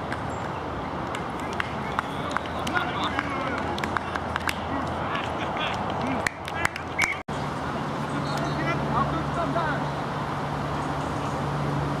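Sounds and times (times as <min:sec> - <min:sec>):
steady outdoor noise: 0:00.0 - 0:12.0
voices shouting and calling out: 0:01.4 - 0:10.0.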